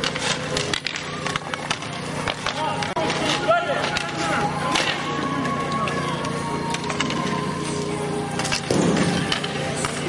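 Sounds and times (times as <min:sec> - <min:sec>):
hockey sticks clacking: 0:00.0 - 0:10.0
skate wheels rolling on asphalt: 0:00.0 - 0:10.0.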